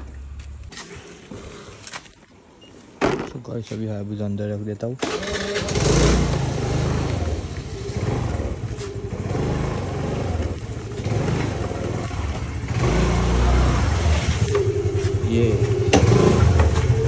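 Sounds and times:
scooter engine revving: 0:05.0 - 0:17.0.

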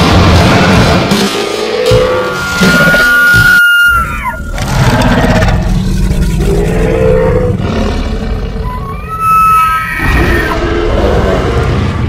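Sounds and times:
music: 0:00.0 - 0:05.8
deep dinosaur roar: 0:04.2 - 0:12.0.

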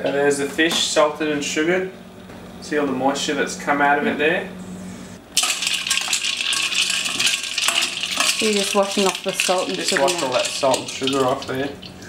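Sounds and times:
ice cubes clinking in steel bowl: 0:05.4 - 0:12.0.

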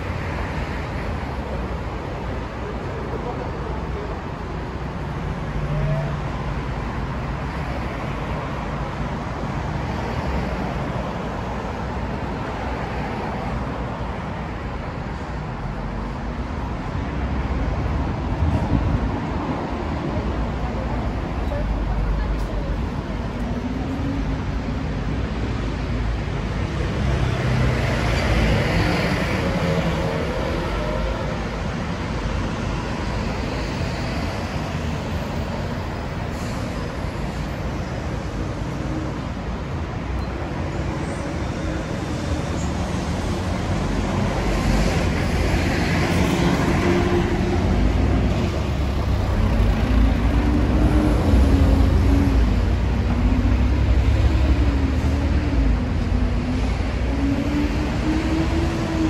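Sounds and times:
street traffic noise: 0:00.0 - 0:59.0.

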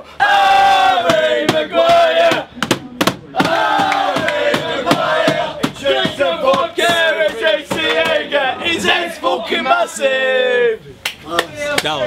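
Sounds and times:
crowd chanting: 0:00.0 - 0:10.8
rhythmic claps or bangs: 0:01.0 - 0:08.4.

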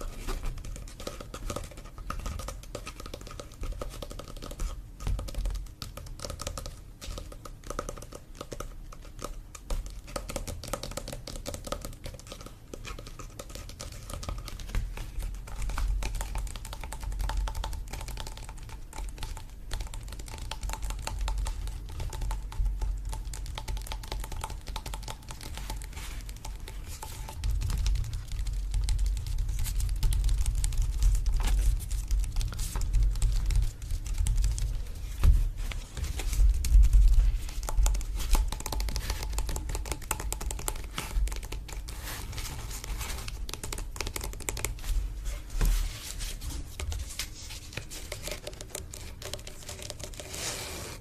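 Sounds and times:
fingertips tapping on canvas: 0:00.0 - 0:50.7.

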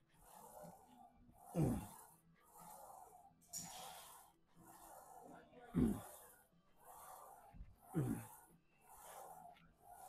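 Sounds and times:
man breathing hard: 0:01.4 - 0:02.1, 0:07.0 - 0:09.4.

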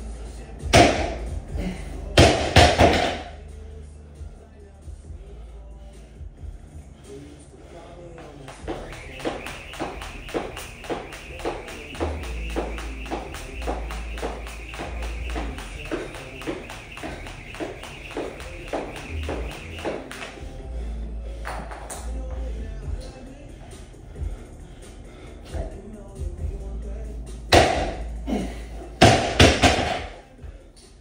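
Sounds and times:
song with heavy bass: 0:08.2 - 0:24.4
jump rope slapping rubber floor: 0:08.5 - 0:20.4, 0:29.0 - 0:30.1.

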